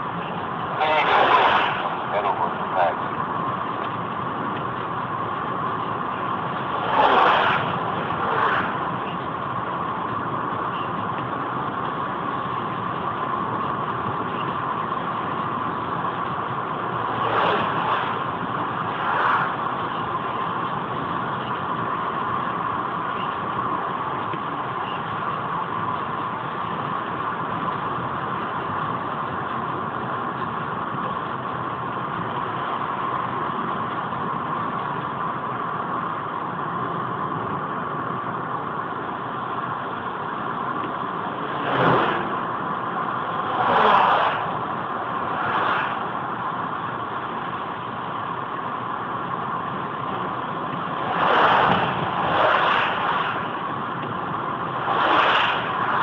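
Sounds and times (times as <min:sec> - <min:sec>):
car engine and tyre noise: 0:00.0 - 0:56.0.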